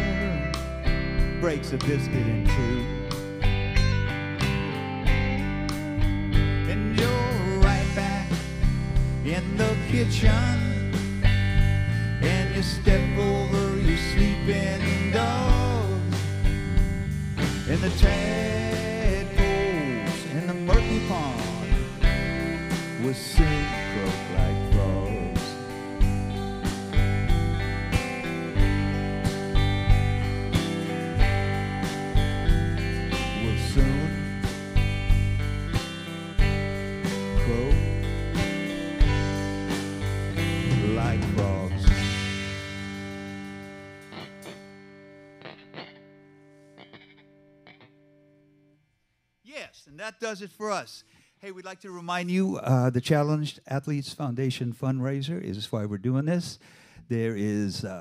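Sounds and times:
live rock band playing: 0:00.0 - 0:46.2.

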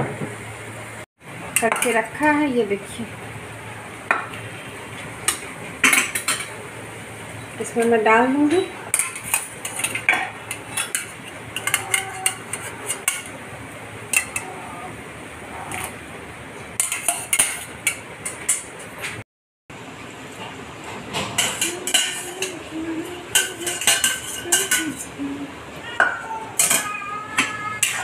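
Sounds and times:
metal spoon clinking on pan: 0:21.4 - 0:22.6, 0:23.3 - 0:25.1.

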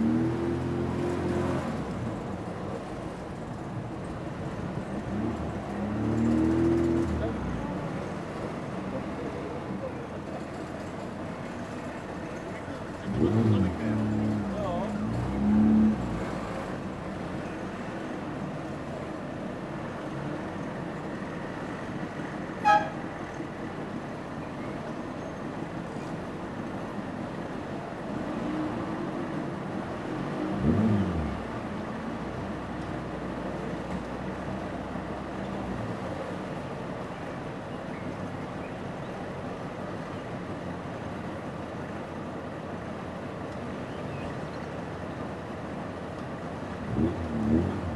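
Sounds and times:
car horn toots: 0:22.6 - 0:23.0.

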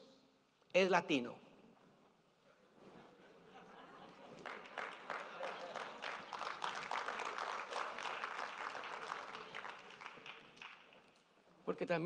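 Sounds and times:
congregation applauding: 0:04.1 - 0:11.2.

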